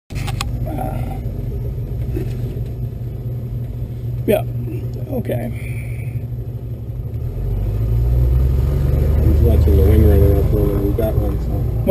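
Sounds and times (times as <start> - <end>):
glider rolling on dirt rumble: 0.1 - 11.9.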